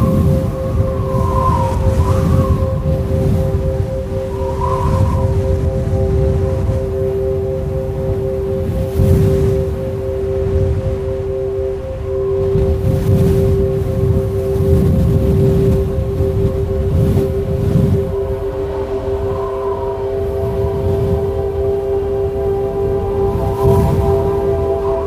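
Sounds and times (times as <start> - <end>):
ambient music of held tones: 0.0 - 25.0
low rushing wash: 0.0 - 25.0.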